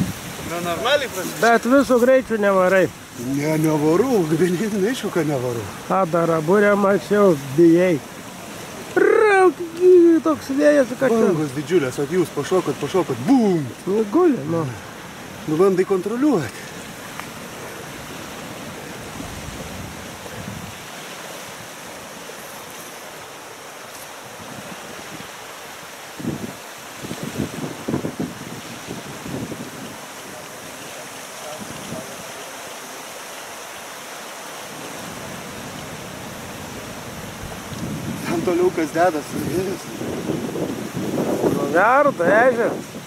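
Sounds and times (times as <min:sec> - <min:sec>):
wind buffeting microphone: 0:00.0 - 0:23.3, 0:24.1 - 0:32.4, 0:34.7 - 0:43.0
choppy water rushing: 0:00.0 - 0:43.0.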